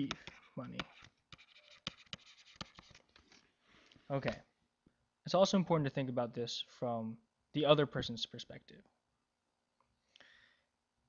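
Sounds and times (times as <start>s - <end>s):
stylus scratching on tablet: 0.0s - 3.1s.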